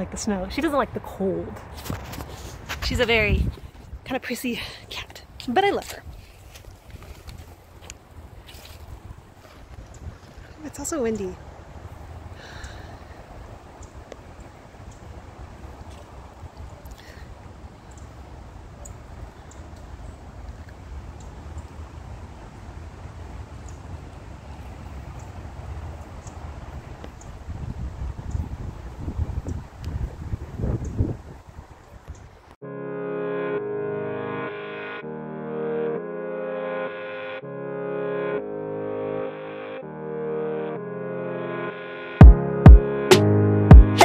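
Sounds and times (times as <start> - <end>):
wind buffeting microphone: 0.0 - 4.1, 5.9 - 12.3, 25.4 - 32.5
electronic music with synthesizer chords: 32.6 - 44.0.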